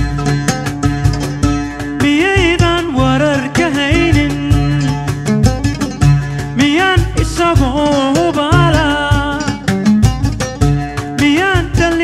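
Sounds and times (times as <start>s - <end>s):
oud plucking a melody: 0.0s - 12.0s.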